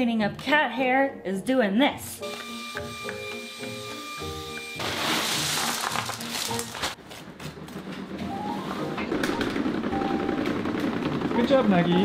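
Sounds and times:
background music: 0:00.0 - 0:12.0
handheld vacuum running over pebbles: 0:04.7 - 0:07.0.

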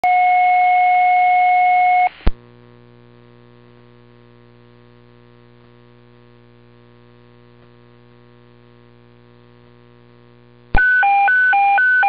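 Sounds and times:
radio click: 0:02.2 - 0:02.4.

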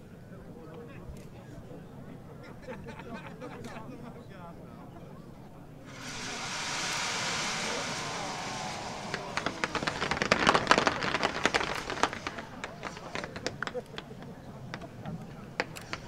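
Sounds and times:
fireworks launching with hiss: 0:05.8 - 0:16.0
fireworks crackling bursts: 0:05.9 - 0:14.2, 0:15.6 - 0:16.0.

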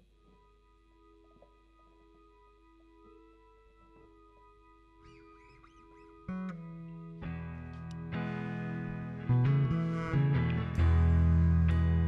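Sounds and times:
quiet held chord: 0:00.0 - 0:12.0
soft wavering guitar squeals: 0:05.0 - 0:07.4
loud plucked electric guitar note: 0:05.1 - 0:12.0.

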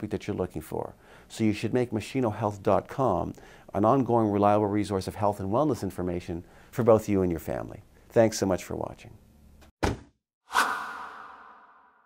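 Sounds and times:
whoosh with held tone: 0:10.5 - 0:12.0.

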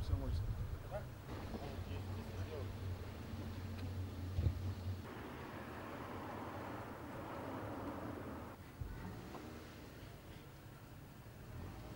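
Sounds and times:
car engine rumbling: 0:01.1 - 0:09.8
outdoor hiss: 0:05.0 - 0:11.9.

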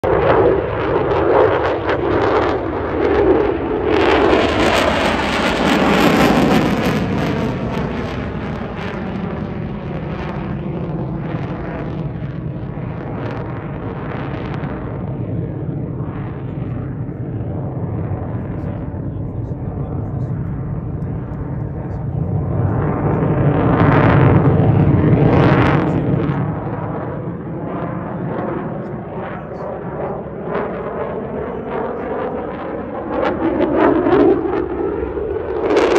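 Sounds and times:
fighter jet flying past: 0:00.0 - 0:35.9.

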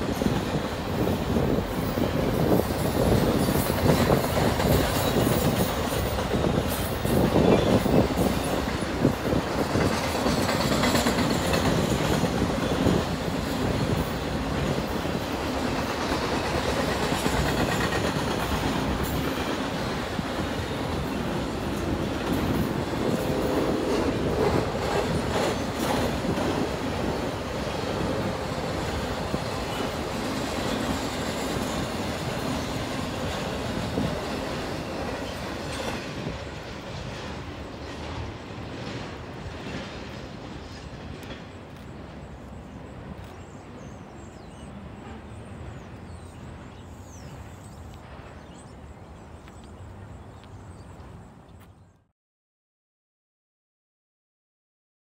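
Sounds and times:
freight train wheels rumbling and clacking: 0:00.0 - 0:49.8.

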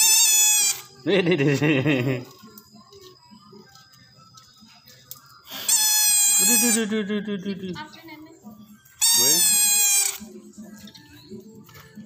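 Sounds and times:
toy trumpet blast: 0:00.0 - 0:00.9, 0:05.5 - 0:06.9, 0:09.0 - 0:10.3.

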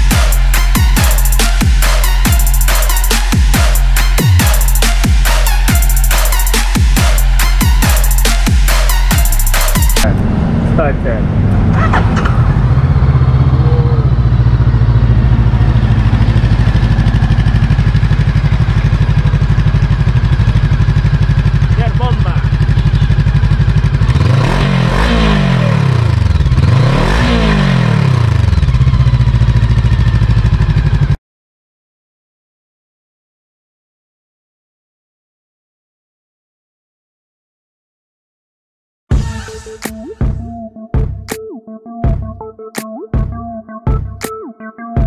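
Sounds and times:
motorcycle engine idling and revving: 0:00.0 - 0:31.2.

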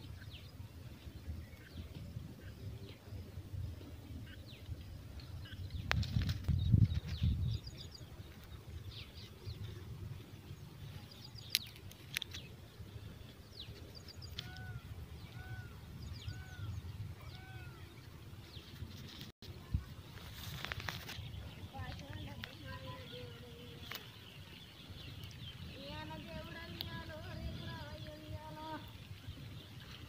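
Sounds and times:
birds chirping: 0:00.0 - 0:30.0
low arched bird call: 0:10.7 - 0:18.8.

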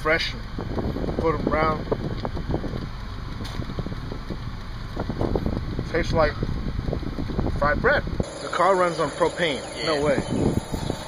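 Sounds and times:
wind buffeting microphone: 0:00.0 - 0:11.0
car cabin rumble: 0:00.5 - 0:08.3.

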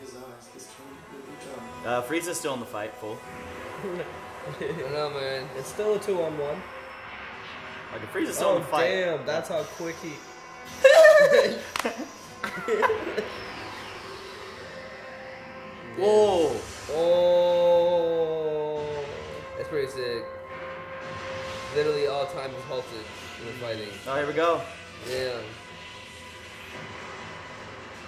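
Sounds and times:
faint background music: 0:00.0 - 0:28.0.

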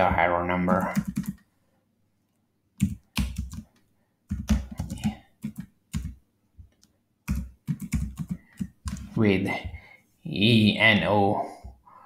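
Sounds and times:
computer keyboard typing: 0:00.7 - 0:01.4, 0:02.8 - 0:06.2, 0:06.8 - 0:09.1.

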